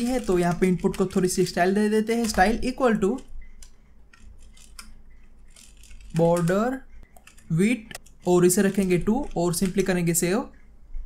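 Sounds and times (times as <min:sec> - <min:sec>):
computer keyboard keys clicking: 0:00.0 - 0:10.5.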